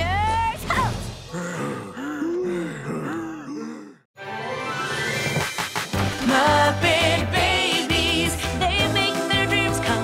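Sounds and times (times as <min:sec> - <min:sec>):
men groaning and gasping: 0:01.2 - 0:04.1.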